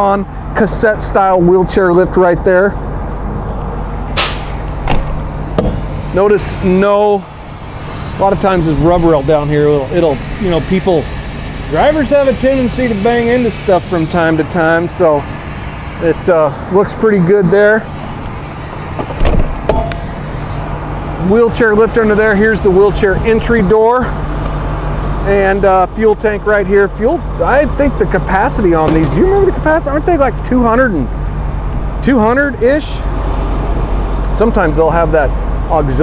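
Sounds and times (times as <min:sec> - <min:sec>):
steady low hum: 0:00.0 - 0:36.0
steady low rumble: 0:00.0 - 0:36.0
metal door latch clicks and knocks: 0:19.0 - 0:20.0.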